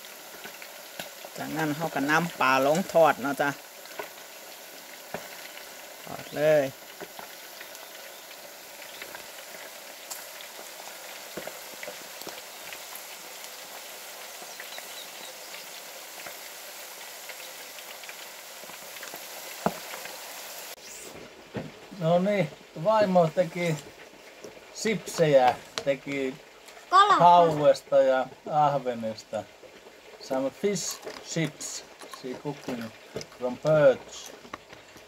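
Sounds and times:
fish deep-frying in oil: 0.0 - 35.0.

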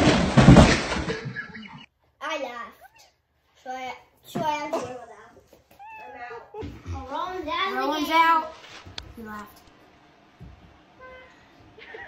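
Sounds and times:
cat meowing: 2.8 - 3.2, 5.7 - 6.6.

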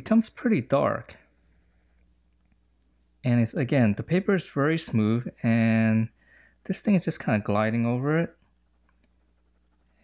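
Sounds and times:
pencil hatching on stone paper: 1.2 - 2.7, 8.4 - 10.0.

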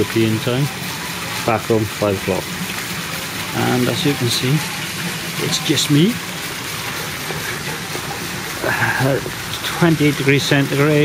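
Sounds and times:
fountain water splashing: 0.0 - 11.0.

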